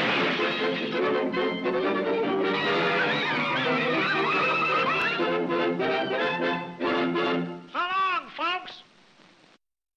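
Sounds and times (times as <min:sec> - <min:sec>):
cartoon orchestra playing: 0:00.2 - 0:07.5.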